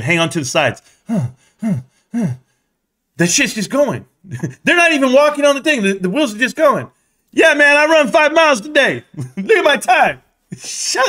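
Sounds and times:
man making wordless vocal sounds: 1.0 - 2.5.

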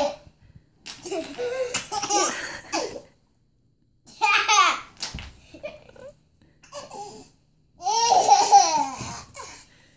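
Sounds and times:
toddler laughing: 1.0 - 3.1, 6.7 - 9.6.

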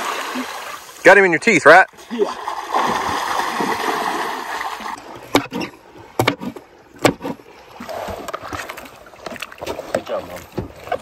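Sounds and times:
water splashing and churning: 0.0 - 11.0.

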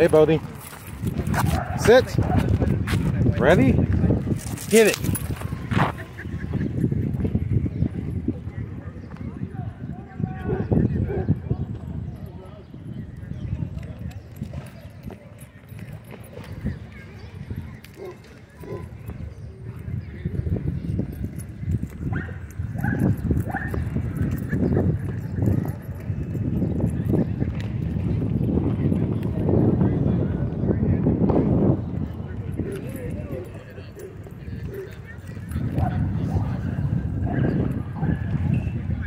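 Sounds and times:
dog paws thudding on dirt: 0.3 - 6.4.

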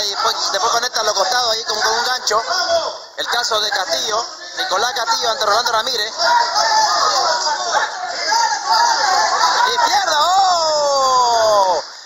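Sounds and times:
commentator excited cry: 9.4 - 11.9.

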